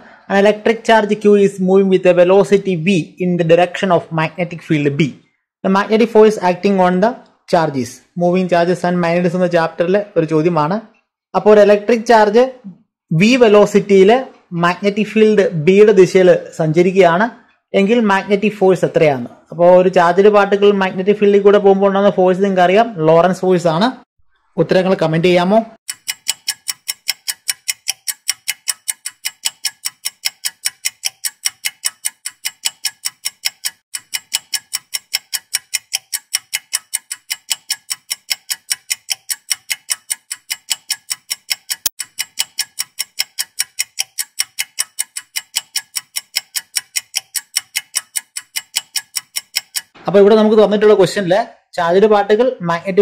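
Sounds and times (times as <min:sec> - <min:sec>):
rapid clock ticking: 0:25.8 - 0:50.0.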